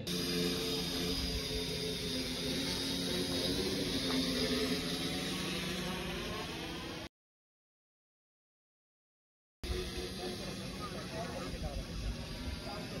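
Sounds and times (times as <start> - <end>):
drone hovering hum: 0.0 - 7.1, 9.6 - 13.0.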